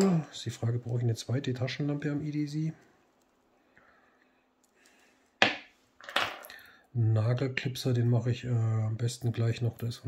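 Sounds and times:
metal items clacking on wooden table: 5.4 - 6.5.

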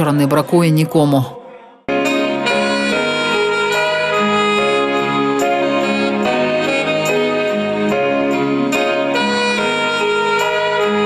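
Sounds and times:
alto saxophone melody: 1.9 - 11.0
musical accompaniment: 1.9 - 11.0.

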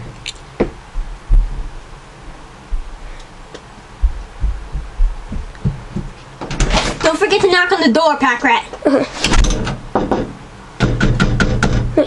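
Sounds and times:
low dull thumps: 0.0 - 3.2, 4.0 - 6.2.

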